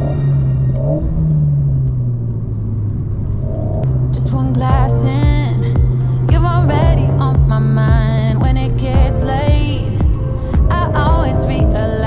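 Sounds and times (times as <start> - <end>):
car engine running: 0.4 - 11.9.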